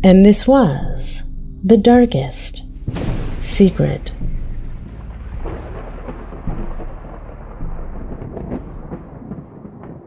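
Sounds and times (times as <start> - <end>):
low rumble of thunder: 2.8 - 10.0
faint rain-like hiss: 3.0 - 9.7.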